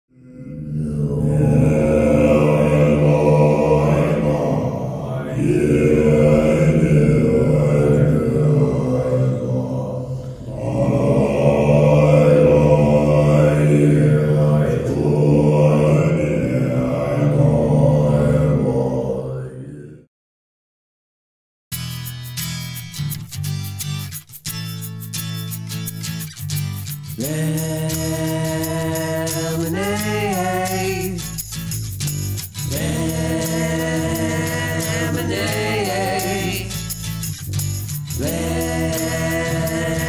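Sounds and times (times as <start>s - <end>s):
deep droning chant: 0.1s - 20.1s, 27.2s - 31.2s, 32.6s - 37.0s, 38.1s - 40.0s.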